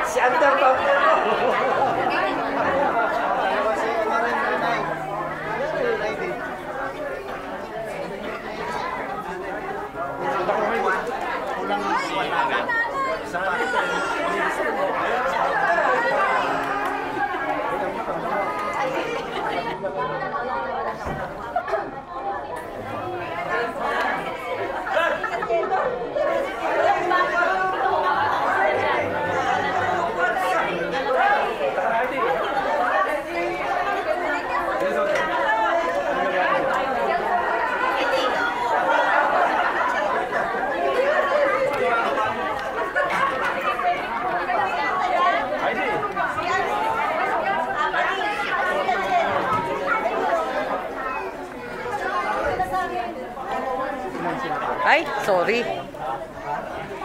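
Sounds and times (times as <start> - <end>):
crowd chatter: 0.0 - 57.0.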